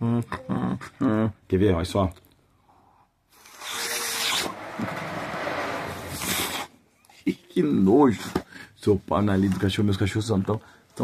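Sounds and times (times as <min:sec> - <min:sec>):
breathy hissing and rubbing: 0:05.2 - 0:06.8.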